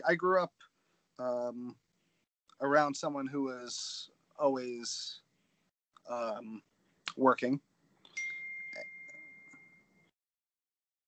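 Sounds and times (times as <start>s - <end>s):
high ringing electronic tone: 8.2s - 10.1s.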